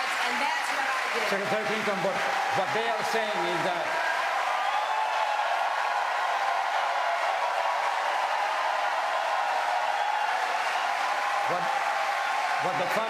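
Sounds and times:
crowd applause and cheering: 0.0 - 13.0.

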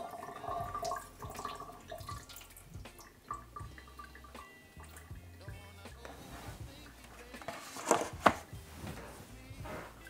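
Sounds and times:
plastic tray clacking on stone: 7.4 - 8.5.

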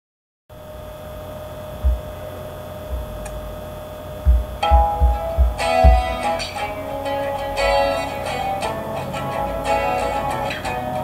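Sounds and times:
low thumps: 1.8 - 3.6, 4.2 - 8.0
guitar notes plucked: 4.3 - 11.0.

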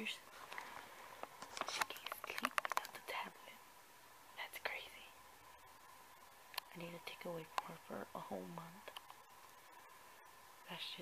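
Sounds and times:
woman whispering: 0.0 - 0.3, 1.6 - 3.6, 4.4 - 5.2, 6.7 - 9.0, 10.6 - 11.0.

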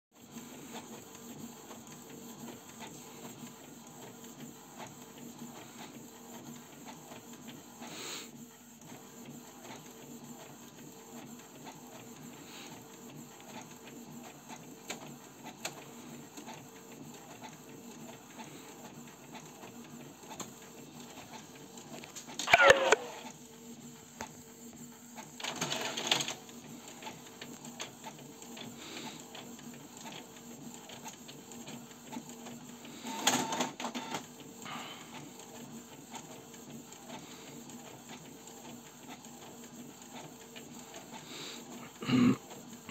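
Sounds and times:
inkjet printer carriage whirring: 0.2 - 41.8.

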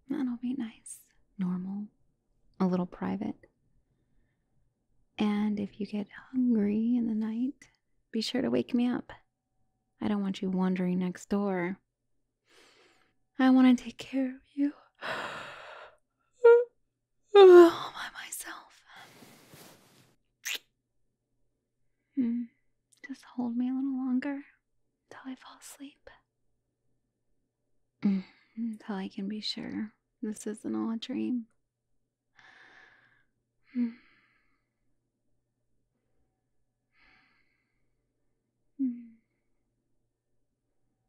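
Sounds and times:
woman whispering: 17.4 - 19.1, 25.1 - 26.2.

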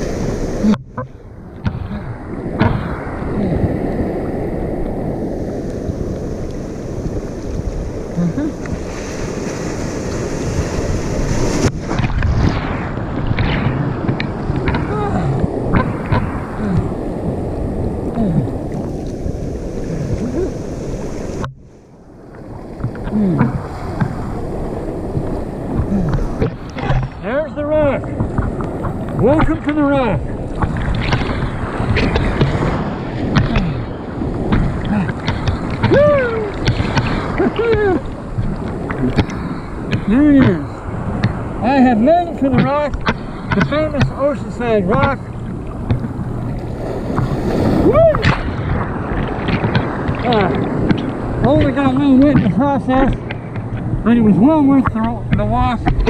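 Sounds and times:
seawater sloshing: 0.0 - 56.0
wind buffeting microphone: 0.0 - 56.0.

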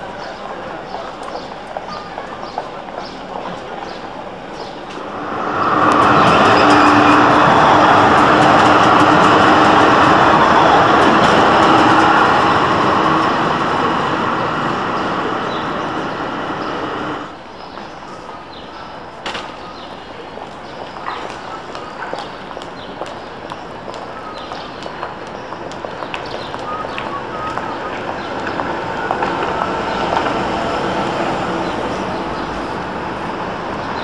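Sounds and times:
street noise: 0.0 - 34.0
tram wheels humming on rails: 0.0 - 34.0.

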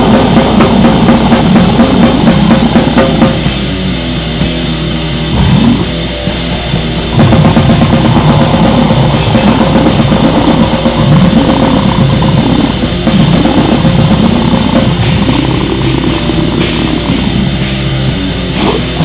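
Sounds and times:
goregrind music: 0.0 - 19.0.

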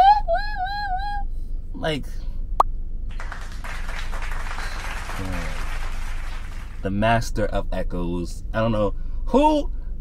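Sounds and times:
soft noisy rush: 3.1 - 7.3.

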